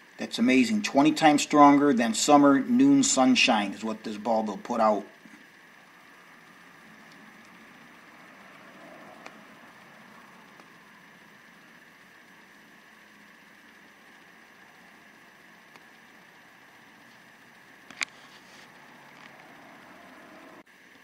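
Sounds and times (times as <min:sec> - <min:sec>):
room noise hiss: 0:00.0 - 0:21.0.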